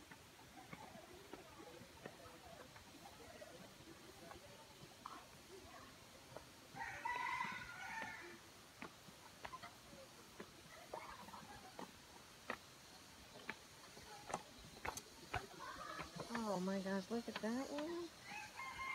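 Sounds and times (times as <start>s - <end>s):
rooster crowing: 6.8s - 8.4s, 18.2s - 18.9s.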